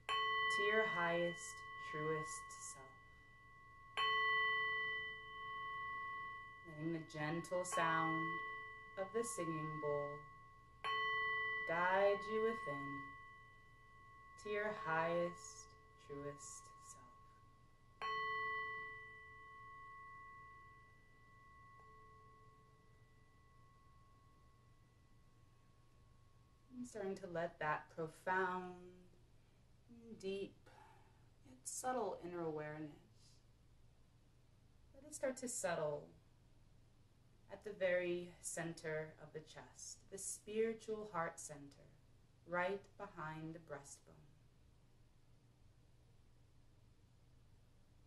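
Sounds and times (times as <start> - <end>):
singing bowl ringing: 0.0 - 26.8.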